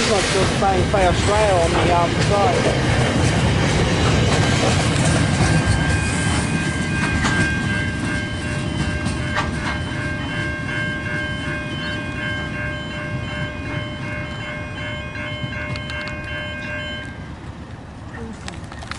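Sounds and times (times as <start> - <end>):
train wheels clacking on rails: 0.0 - 17.1
level crossing bells ringing: 5.4 - 17.3.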